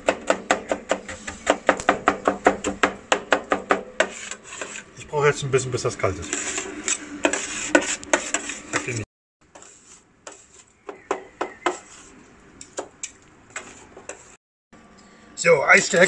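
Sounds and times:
metal spatulas scraping steel plate: 4.0 - 4.9, 6.0 - 9.0.

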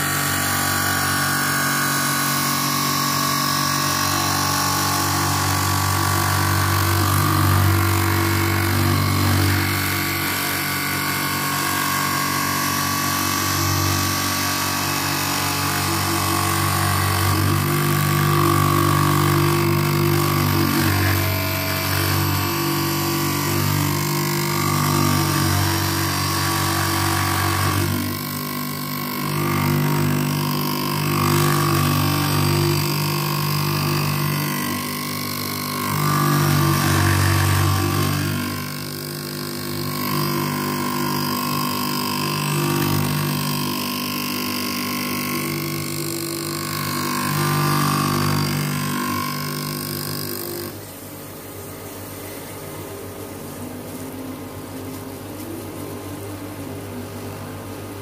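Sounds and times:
grinding wheel grinding lens: 0.0 - 51.0.

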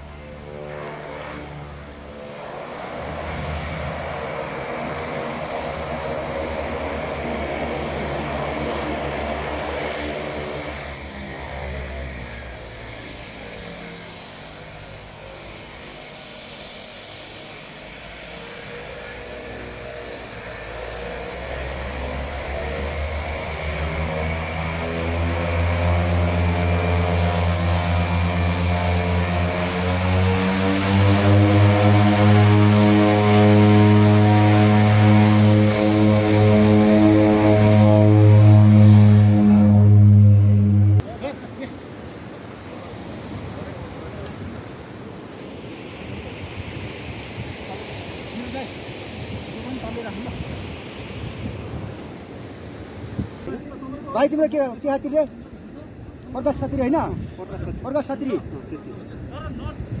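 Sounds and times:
high turbine whine: 0.0 - 60.0
propeller drone: 0.0 - 60.0.

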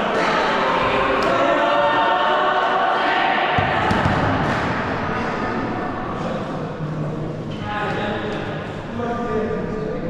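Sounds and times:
crowd singing in chorus: 0.0 - 6.2.

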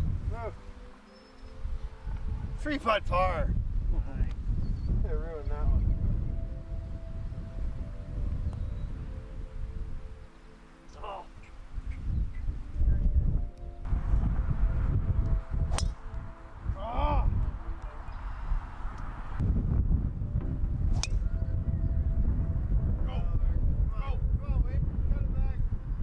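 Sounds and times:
wind buffeting microphone: 0.0 - 0.7, 1.5 - 10.3, 11.3 - 26.0.

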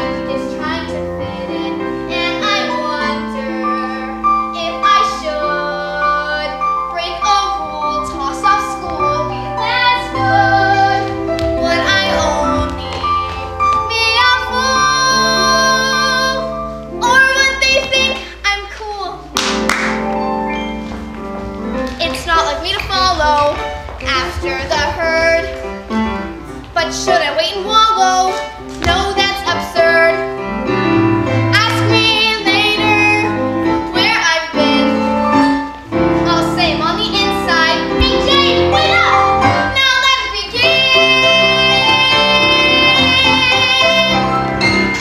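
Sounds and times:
girl singing: 0.0 - 19.4, 21.9 - 25.7, 26.7 - 30.3, 31.5 - 35.5, 36.2 - 44.4
instrumental accompaniment: 0.0 - 45.0.

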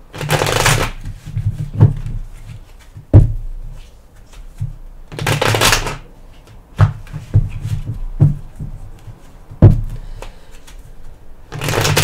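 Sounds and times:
cards shuffling: 0.1 - 3.1, 3.7 - 12.0.

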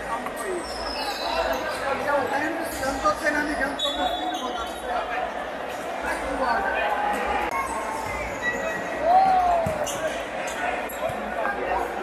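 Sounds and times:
people shouting and talking: 0.0 - 12.0.

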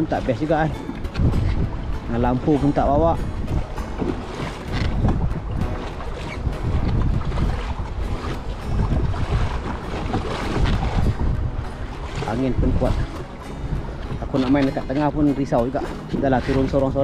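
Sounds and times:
strong wind buffeting microphone: 0.0 - 17.0
water splashing against kayak hull: 0.0 - 17.0.

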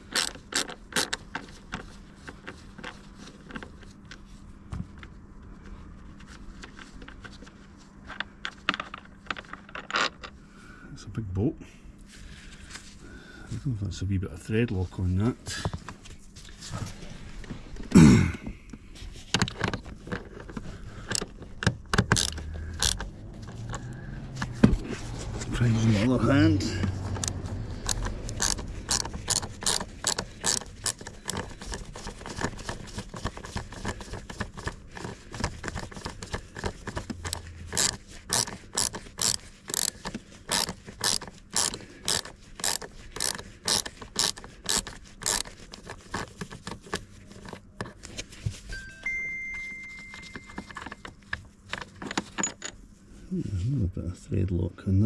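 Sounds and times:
ratchet wrench clicking: 0.1 - 1.2, 21.9 - 23.9, 26.8 - 32.5, 35.7 - 46.3
short steady tone: 48.7 - 50.8.

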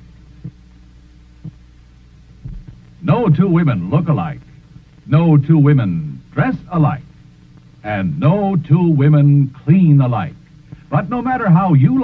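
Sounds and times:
low steady hum: 0.0 - 12.0
soft thumps: 2.4 - 2.8.

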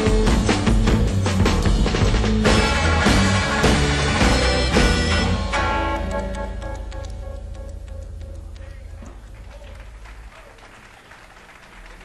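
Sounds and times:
audience applauding: 8.6 - 12.0.

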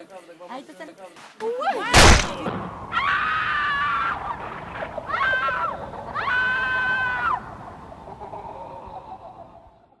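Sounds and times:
long high-pitched scream: 5.1 - 7.4.

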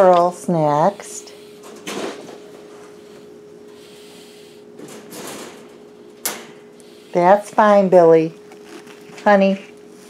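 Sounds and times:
faint steady hum: 0.0 - 10.0
wire cage door rattling: 4.8 - 6.6.

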